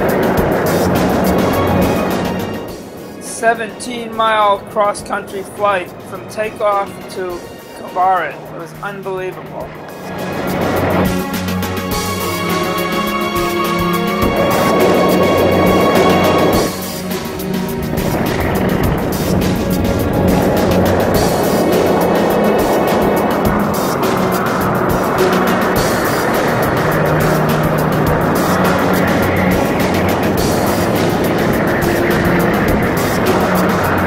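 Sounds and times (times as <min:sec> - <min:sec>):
loud rushing noise: 0:00.0 - 0:04.8, 0:07.3 - 0:34.0
background music with steady beat: 0:00.0 - 0:34.0.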